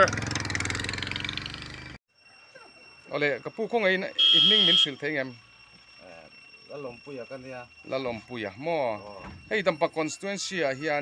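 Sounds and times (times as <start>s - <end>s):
high-pitched electronic beep: 2.5s - 11.0s.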